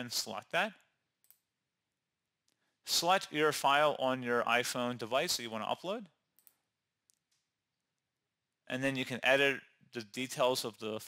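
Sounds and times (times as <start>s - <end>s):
man speaking: 0.0s - 0.9s, 2.9s - 6.2s, 8.6s - 11.0s.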